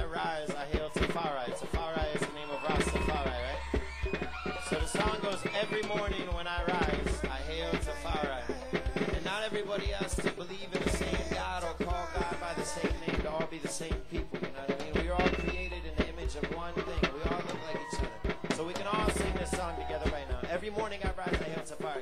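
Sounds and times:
hand drum strikes: 0.0s - 22.0s
deep bass note: 6.8s - 8.9s, 11.0s - 12.6s, 14.9s - 17.3s, 18.1s - 20.8s.

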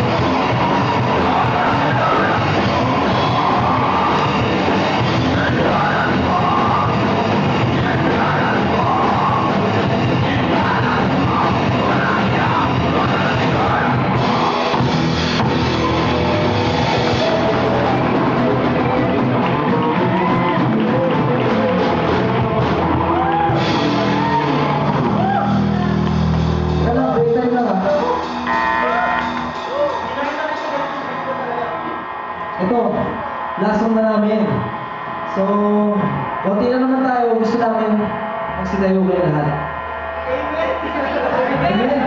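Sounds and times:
bass guitar: 0.0s - 42.0s
drum kit: 0.0s - 42.0s
electric guitars: 0.0s - 42.0s
man speaking through pa microphone: 26.8s - 28.2s, 32.6s - 34.7s, 35.3s - 39.7s, 40.3s - 42.0s.

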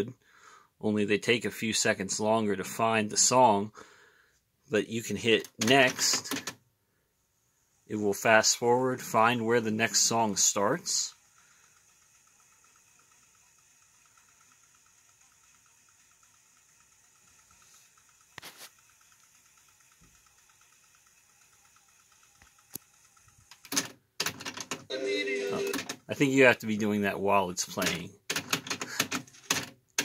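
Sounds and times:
cassette deck whirring: 5.1s - 6.6s, 7.8s - 26.1s, 27.6s - 30.0s.

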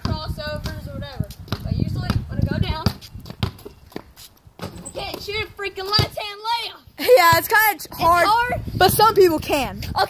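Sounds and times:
child talking: 0.0s - 3.0s, 4.8s - 10.0s
basketball bouncing on concrete: 0.0s - 6.3s.

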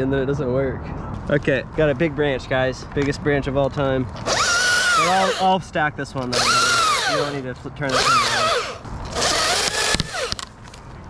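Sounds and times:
battery chainsaw cutting wood: 4.2s - 5.5s, 6.3s - 10.4s.

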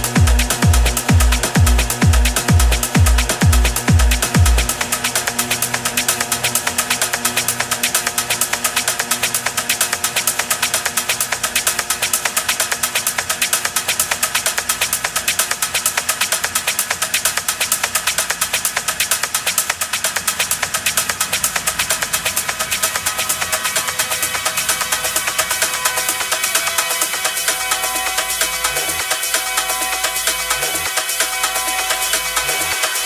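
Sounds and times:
electronic dance music: 0.0s - 33.0s
hi-hat ticks: 0.0s - 33.0s.

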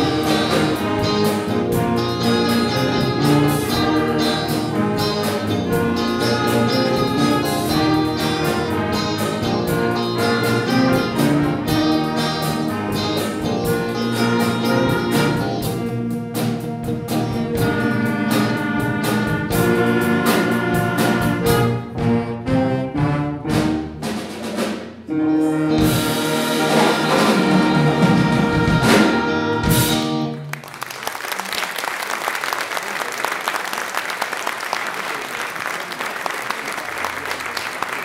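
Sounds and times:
drums keeping steady beat: 0.0s - 30.3s
wind band playing: 0.0s - 30.8s.

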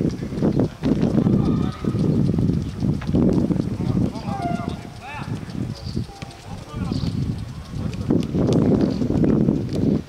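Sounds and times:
loud low rumbling: 0.0s - 9.5s.

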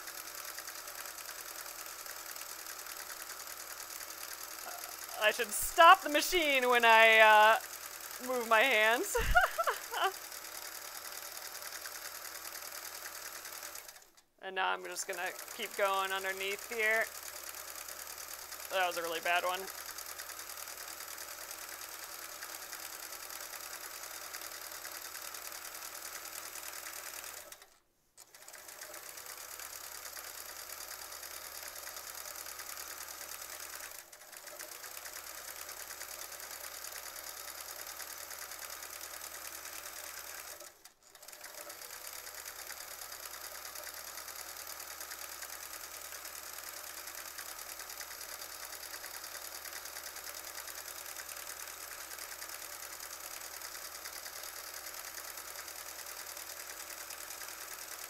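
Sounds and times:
sewing machine running: 0.0s - 58.0s.

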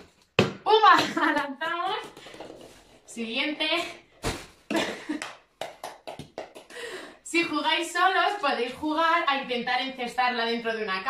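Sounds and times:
hands slapping plastic bag: 4.2s - 6.7s.

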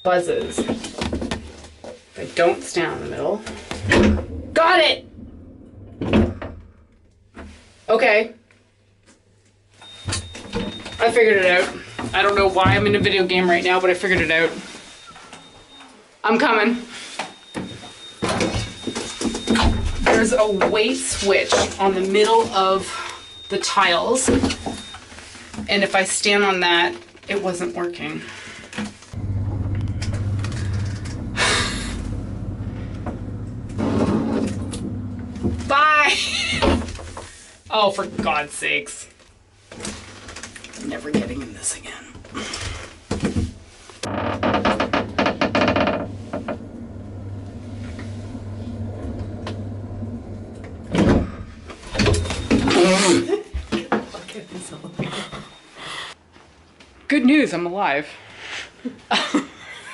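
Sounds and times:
lift humming: 2.8s - 7.3s, 29.2s - 36.4s, 44.1s - 52.6s
lift clunk: 3.5s - 7.5s
rattling bursts: 3.6s - 7.3s, 29.2s - 35.8s
faint high whine: 29.2s - 35.8s.

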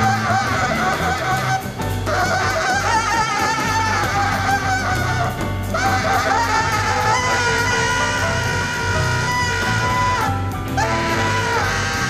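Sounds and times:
bass: 0.0s - 12.0s
drums: 0.0s - 12.0s
tenor saxophone with vibrato: 0.0s - 12.0s.

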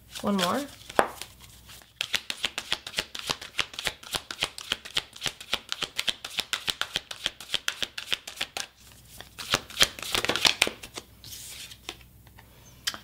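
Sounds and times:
playing cards being shuffled: 0.1s - 12.0s.

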